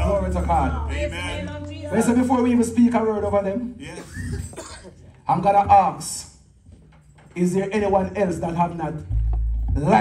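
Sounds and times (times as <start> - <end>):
person coughing: 3.8 - 5.0.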